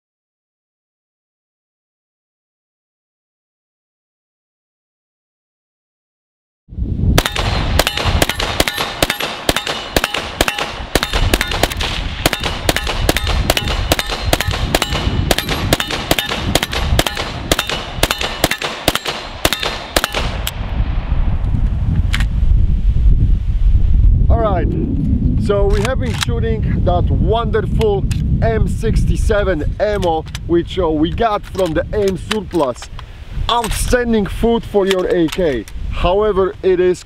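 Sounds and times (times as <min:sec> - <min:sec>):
rifle firing rapidly: 0:07.2 - 0:20.4.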